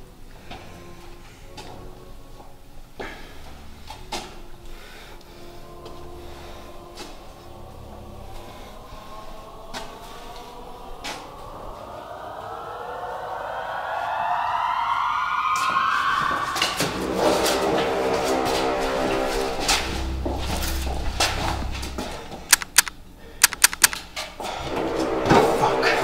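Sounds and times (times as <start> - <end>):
action film music: 3.2 - 22.9, 23.5 - 26.0
deep rumble: 19.6 - 22.5
sharp cracks: 22.5 - 24.1.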